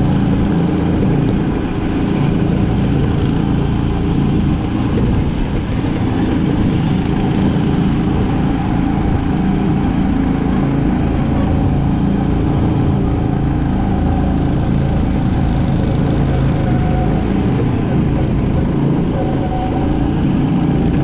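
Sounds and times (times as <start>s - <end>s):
go-kart engine running: 0.0s - 21.0s.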